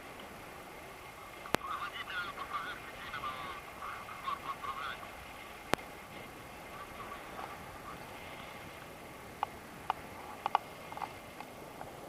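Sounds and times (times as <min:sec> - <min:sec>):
wind hiss: 0:00.0 - 0:12.0.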